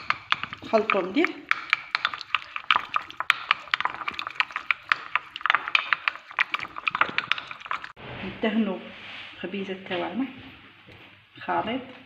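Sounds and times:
spoon scraping ceramic bowl: 0:00.0 - 0:08.0.

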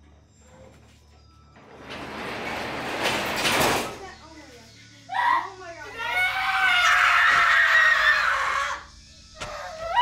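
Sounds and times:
woman screaming: 0:05.1 - 0:08.8.

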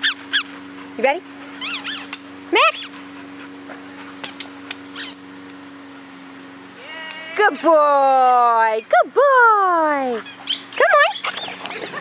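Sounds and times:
steady low hum: 0:00.0 - 0:12.0
dog whimpering: 0:10.2 - 0:12.0.

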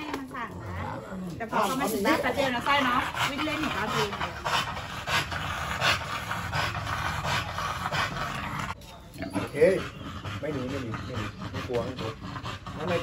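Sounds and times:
dog panting rapidly: 0:01.5 - 0:08.8, 0:09.4 - 0:13.0.

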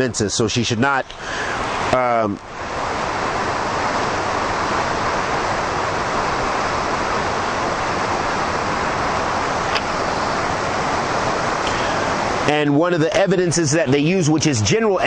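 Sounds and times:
steady rushing noise: 0:00.0 - 0:15.0.

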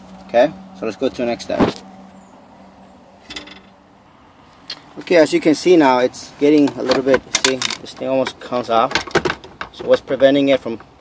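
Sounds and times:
plastic console clack: 0:06.5 - 0:11.0.

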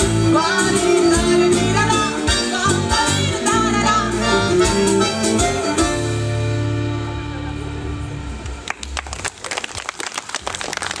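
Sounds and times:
crowd applauding: 0:08.4 - 0:11.0.

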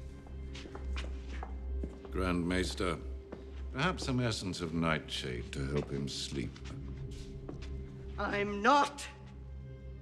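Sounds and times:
footsteps walking across a room: 0:00.0 - 0:08.2
low sustained background music: 0:00.0 - 0:10.0.

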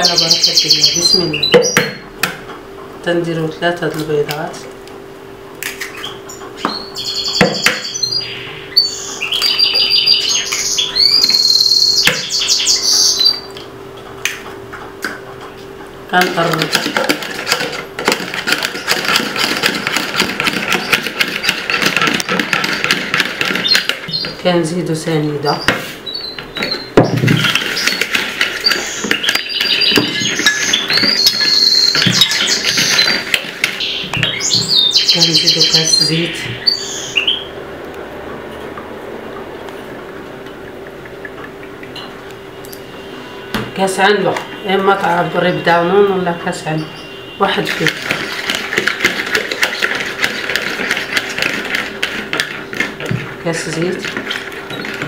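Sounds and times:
whisk beating batter in bowl: 0:16.1 - 0:24.3, 0:27.2 - 0:33.9, 0:47.5 - 0:55.0
whisk clicking against plastic bowl: 0:16.1 - 0:24.3.

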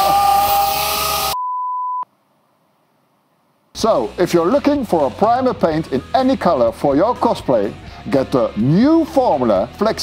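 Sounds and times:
angle grinder whining: 0:00.0 - 0:01.4
electronic beep tone: 0:01.0 - 0:02.1.

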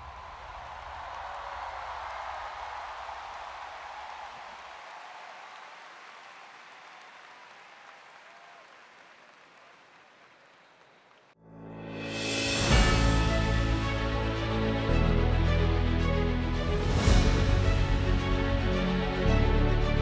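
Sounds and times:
stadium crowd applauding and cheering: 0:00.0 - 0:11.4, 0:12.6 - 0:20.0.

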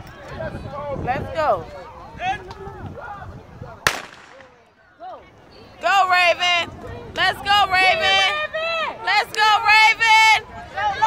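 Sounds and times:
starting pistol shot: 0:03.9 - 0:04.6.

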